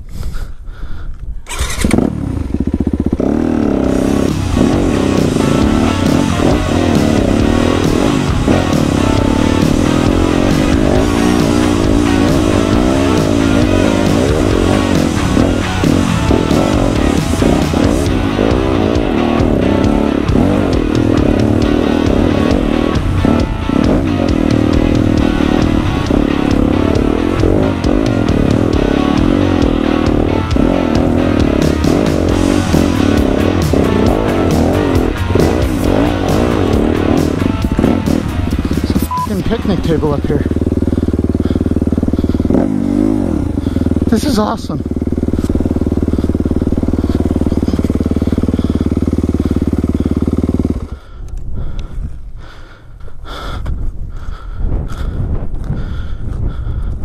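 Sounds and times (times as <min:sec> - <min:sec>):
dirt bike engine revving: 0:01.5 - 0:52.8
background music: 0:03.2 - 0:41.3.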